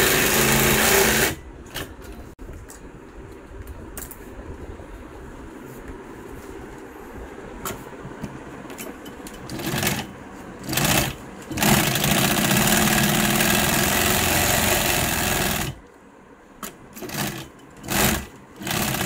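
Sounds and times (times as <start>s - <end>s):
industrial sewing machine stitching: 0.0s - 1.4s, 9.5s - 15.8s, 17.0s - 19.0s.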